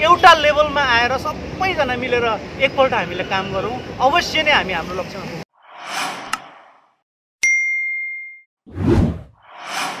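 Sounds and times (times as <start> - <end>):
whoosh: 5.6 - 7.0, 8.7 - 10.0
bright bell ding: 7.4 - 8.4.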